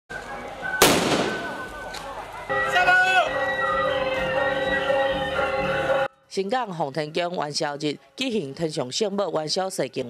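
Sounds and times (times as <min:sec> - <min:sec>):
firecrackers exploding: 0:00.8 - 0:01.8
crackle of firecrackers: 0:00.8 - 0:02.1.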